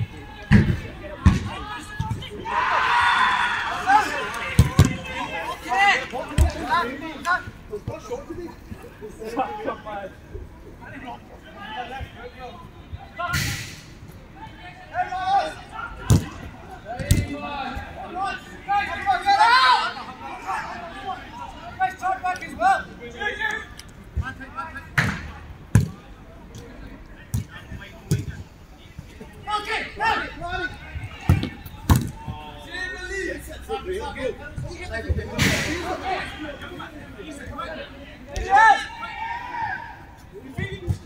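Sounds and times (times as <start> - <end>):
players shouting: 0.0 - 10.2, 14.3 - 26.1, 29.2 - 41.0.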